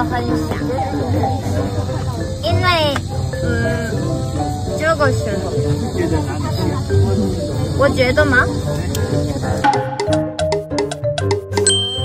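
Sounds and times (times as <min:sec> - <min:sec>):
bell-like background music: 0:09.6 - 0:12.0
high ding: 0:11.6 - 0:12.0.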